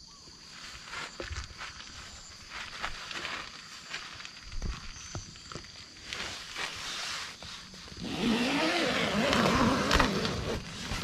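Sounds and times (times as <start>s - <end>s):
zipper being pulled open: 8.0s - 11.0s.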